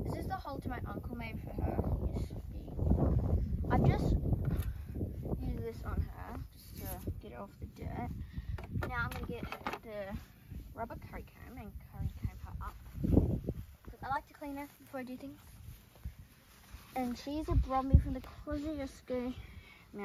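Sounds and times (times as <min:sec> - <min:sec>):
low rumbles: 0:00.0 - 0:14.2.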